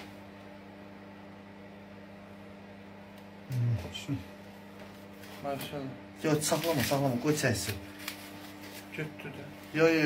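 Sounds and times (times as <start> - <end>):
steady low hum: 0.0 - 10.0
person talking: 5.4 - 7.8.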